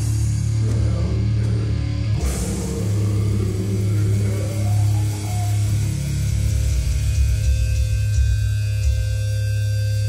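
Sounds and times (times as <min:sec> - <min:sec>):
low electric amplifier hum: 0:00.0 - 0:10.0.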